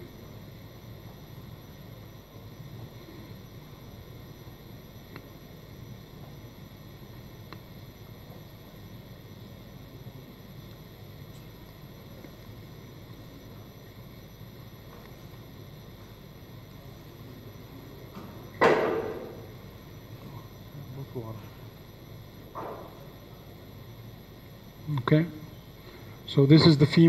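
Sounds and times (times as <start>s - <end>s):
low background hum: 0.0s - 27.0s
sharp knock: 18.6s - 19.4s.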